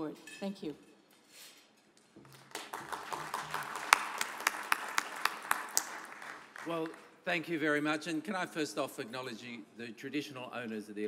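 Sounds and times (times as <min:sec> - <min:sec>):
audience applauding: 0:02.2 - 0:07.2.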